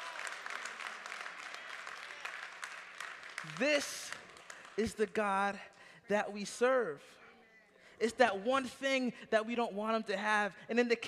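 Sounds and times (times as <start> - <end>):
congregation applauding: 0.0 - 5.6.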